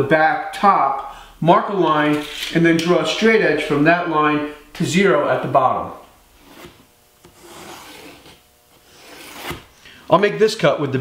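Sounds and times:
pencil scratching on wood: 0:06.4 - 0:09.6.

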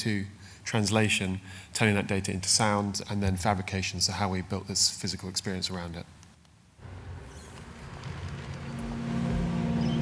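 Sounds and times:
low rumbling drone: 0:06.8 - 0:10.0
steady low tones: 0:06.8 - 0:10.0.

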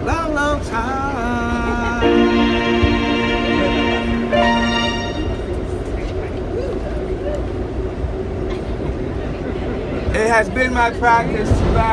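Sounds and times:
subway train rumbling: 0:00.0 - 0:11.9.

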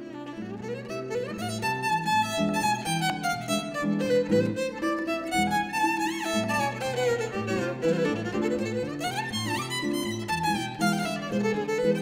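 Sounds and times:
violin melody with sliding notes: 0:00.0 - 0:12.0.

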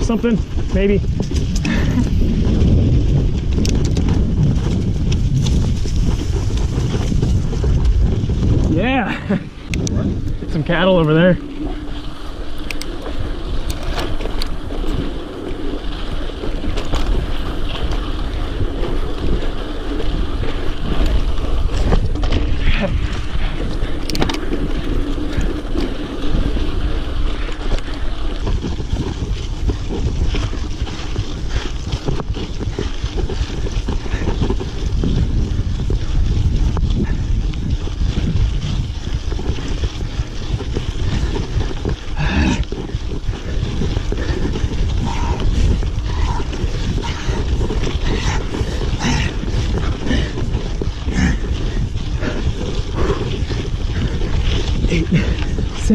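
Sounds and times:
mountain bike rolling on dirt: 0:00.0 - 0:55.9
wind buffeting microphone: 0:00.0 - 0:55.9
bike clicks and knocks: 0:01.1 - 0:08.7, 0:09.6 - 0:55.7.

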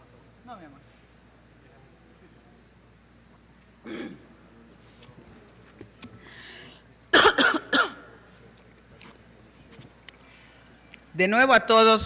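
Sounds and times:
person clearing throat: 0:03.8 - 0:04.3, 0:07.1 - 0:08.1.

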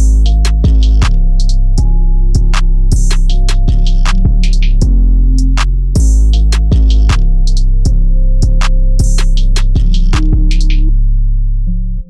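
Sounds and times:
hi-hat and clap hits: 0:00.0 - 0:10.9
deep bass notes: 0:00.0 - 0:12.0
synth melody: 0:00.0 - 0:12.0.

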